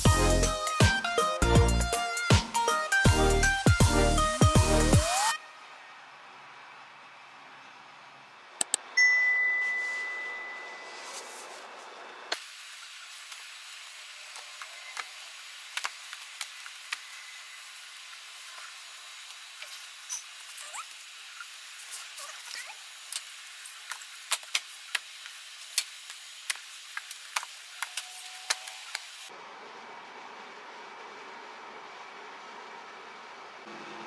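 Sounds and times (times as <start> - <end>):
bright ding: 9.0 - 11.0.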